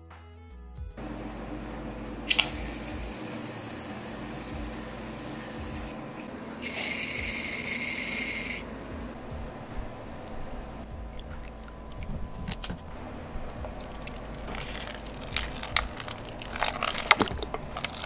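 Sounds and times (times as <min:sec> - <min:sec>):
aerosol can spraying hiss: 0:02.3 - 0:06.0, 0:06.6 - 0:08.7.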